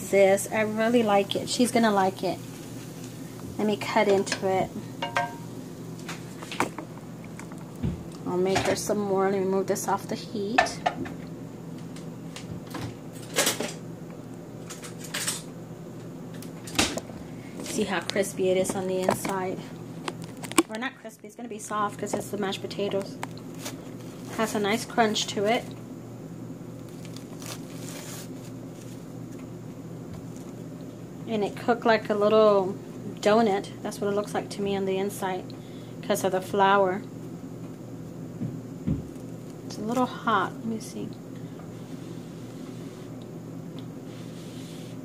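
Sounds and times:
steady low hum: 0:00.0 - 0:45.0.

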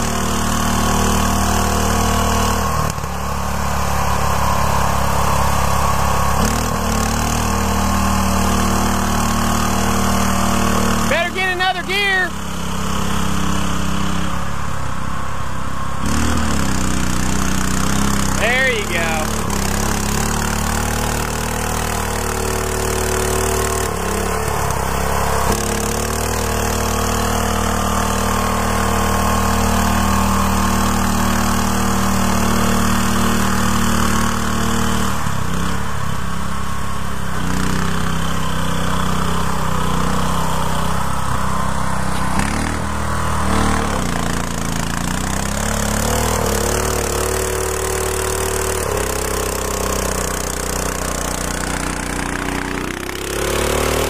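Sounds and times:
garden tractor engine under load: 0:00.0 - 0:54.0.

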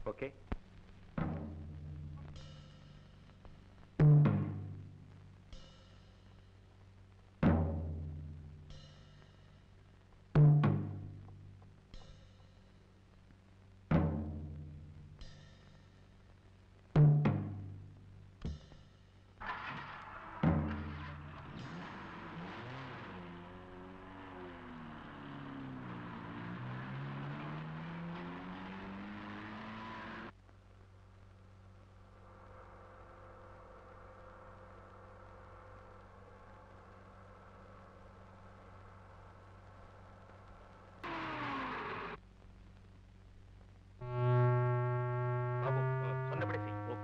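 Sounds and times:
low noisy rumbling sound: 0:00.0 - 0:47.0.

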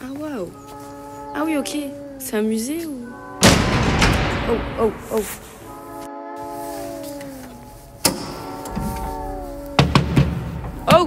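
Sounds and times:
metal door hinges creaking: 0:03.1 - 0:04.8, 0:08.0 - 0:11.0
heavy metal door slamming: 0:03.2 - 0:05.7, 0:08.0 - 0:11.0.

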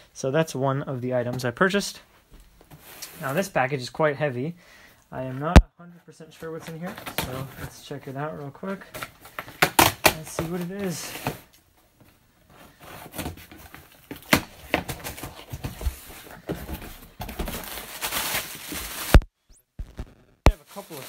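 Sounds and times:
plastic wrapping rustling: 0:12.6 - 0:21.0.

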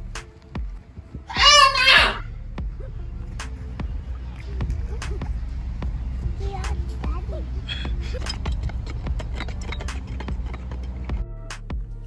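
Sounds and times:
music: 0:00.0 - 0:12.0
children shouting: 0:01.3 - 0:02.9
low rumble: 0:02.2 - 0:12.0.

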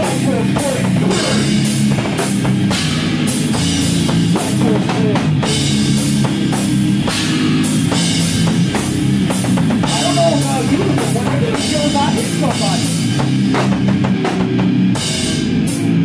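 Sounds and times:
bass guitar: 0:00.0 - 0:16.0
heavy hardcore band playing: 0:00.0 - 0:16.0.

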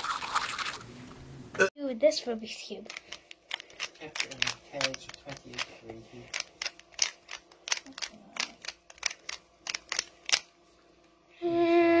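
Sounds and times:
puzzle cube clicking: 0:02.9 - 0:05.7, 0:06.3 - 0:10.5.

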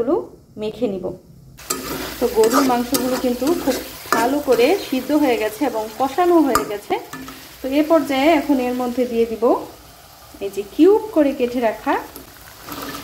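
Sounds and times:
woman talking: 0:00.0 - 0:01.2, 0:02.2 - 0:09.7, 0:10.4 - 0:12.2
spatula stirring in pan: 0:01.6 - 0:09.1, 0:11.4 - 0:13.0
meat sizzling in oil: 0:01.6 - 0:13.0.

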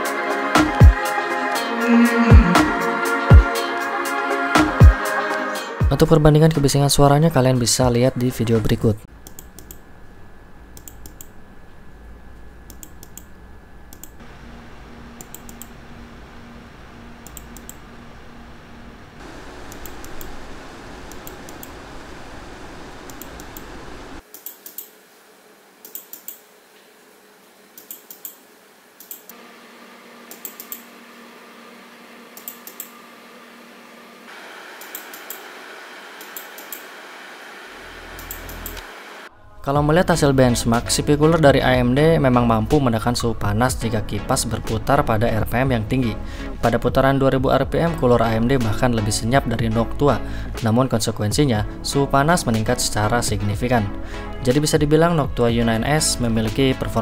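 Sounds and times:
computer cooler fans whooshing: 0:08.6 - 0:24.3, 0:25.0 - 0:51.7
computer mouse clicks: 0:09.2 - 0:09.8, 0:10.8 - 0:11.3, 0:12.7 - 0:13.3, 0:13.9 - 0:14.2, 0:15.2 - 0:15.7, 0:17.2 - 0:17.8, 0:24.3 - 0:24.9, 0:25.8 - 0:26.4, 0:27.8 - 0:28.4, 0:29.0 - 0:29.4, 0:30.3 - 0:30.8, 0:32.4 - 0:32.9, 0:34.8 - 0:35.4, 0:36.2 - 0:36.9, 0:38.2 - 0:38.9.

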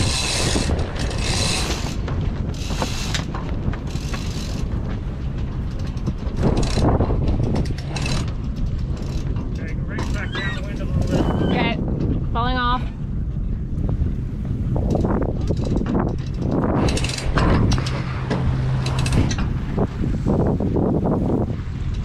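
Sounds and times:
rope rasping through pulleys: 0:00.0 - 0:04.9, 0:05.6 - 0:11.8, 0:14.8 - 0:20.6
wind on microphone: 0:00.0 - 0:22.0.

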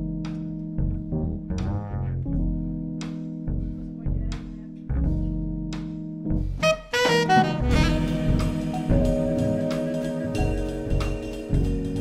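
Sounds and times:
held keyboard chords: 0:00.0 - 0:12.0
plucked double bass: 0:00.8 - 0:02.6, 0:04.9 - 0:05.6
alto saxophone: 0:06.6 - 0:10.5
drum kit cymbals: 0:06.7 - 0:12.0.

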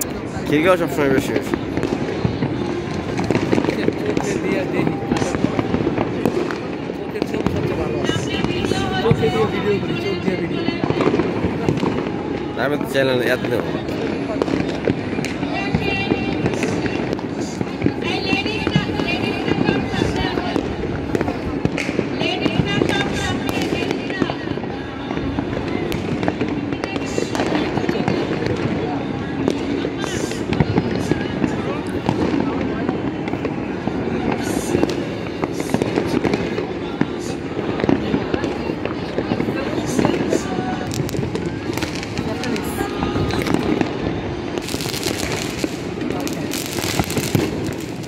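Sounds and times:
fireworks and firecrackers bangs: 0:00.0 - 0:48.0
sharp firework cracks: 0:00.0 - 0:48.0.

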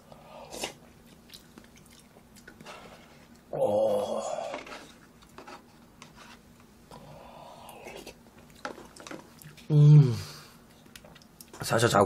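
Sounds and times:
person chewing food: 0:00.1 - 0:03.5, 0:06.9 - 0:09.7.

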